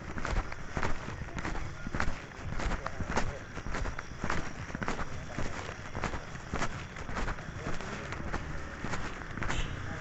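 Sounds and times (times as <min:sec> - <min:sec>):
footsteps walking: 0:00.0 - 0:10.0.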